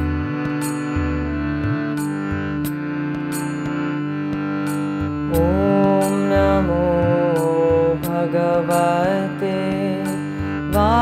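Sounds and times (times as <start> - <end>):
steady drone: 0.0 - 11.0.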